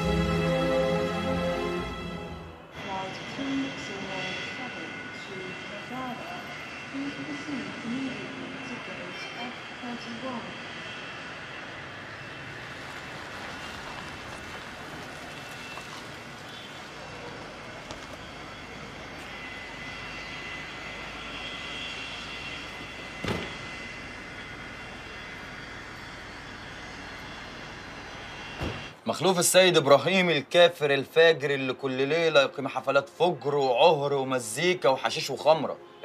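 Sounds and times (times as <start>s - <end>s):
distant jet aircraft: 0.0s - 29.1s
traffic hum: 0.0s - 30.3s
sharp thump: 23.2s - 23.6s, 28.6s - 28.9s.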